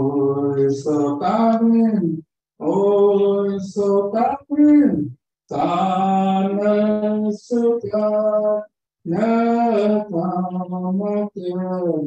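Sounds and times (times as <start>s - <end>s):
man singing a hymn: 0.0s - 12.0s.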